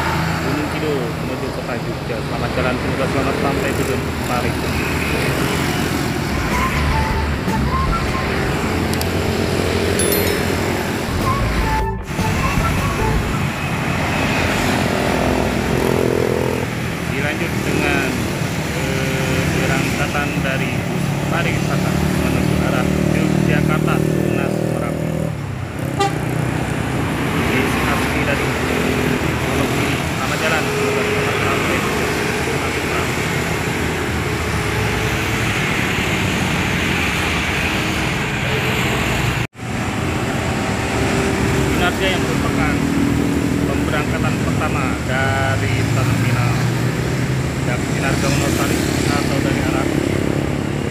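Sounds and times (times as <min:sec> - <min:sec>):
road traffic passing: 0:00.0 - 0:50.9
bus horn steady tones: 0:25.9 - 0:26.3.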